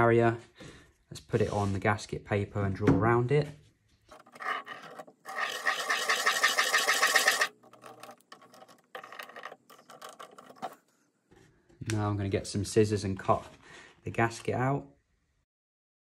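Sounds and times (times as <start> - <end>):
marker squeaking: 4.1 - 10.8.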